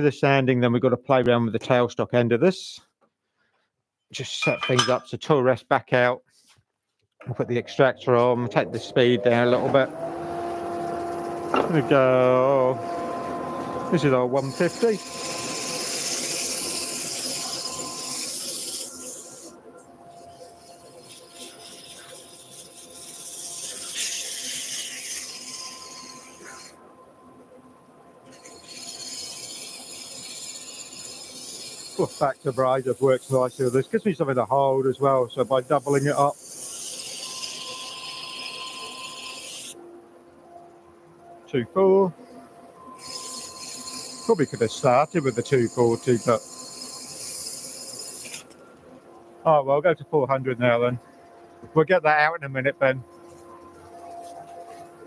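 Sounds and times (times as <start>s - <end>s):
faint steady machine hum: 7.2s - 55.0s
sandpaper hissing on spinning wood: 13.9s - 26.8s, 28.3s - 39.8s, 43.0s - 48.6s.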